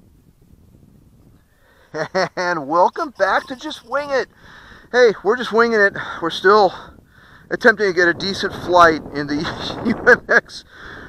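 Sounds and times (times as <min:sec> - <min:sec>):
wind rumble on microphone: 0:00.0 - 0:11.0
man speaking: 0:02.0 - 0:04.3, 0:04.9 - 0:06.7.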